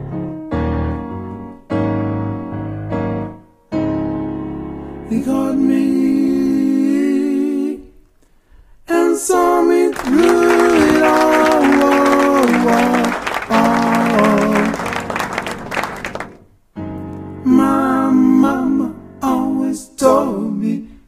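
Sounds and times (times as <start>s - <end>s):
group singing gospel in harmony: 5.2s - 7.9s, 8.9s - 16.2s, 17.5s - 21.0s.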